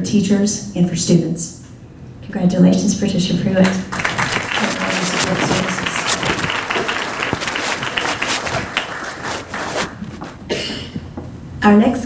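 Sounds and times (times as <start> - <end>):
audience applauding: 3.6 - 10.4.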